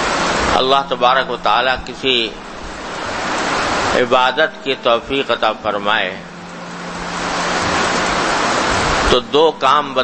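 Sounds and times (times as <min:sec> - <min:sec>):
loud even hiss: 0:00.0 - 0:10.0
steady low hum: 0:00.0 - 0:10.0
person speaking: 0:00.5 - 0:02.4, 0:03.9 - 0:06.4.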